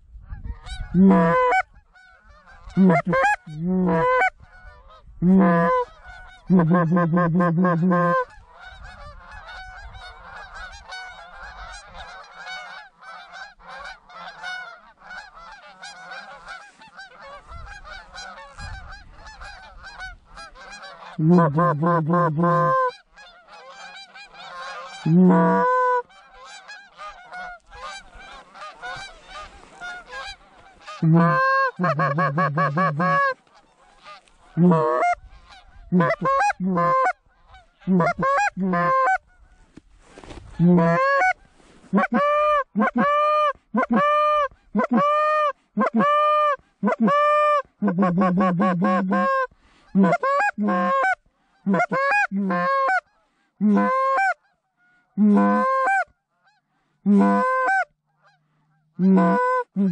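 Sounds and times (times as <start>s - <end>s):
goose call honks: 0.4s - 39.6s, 40.2s - 59.9s
geese honking: 0.5s - 59.9s.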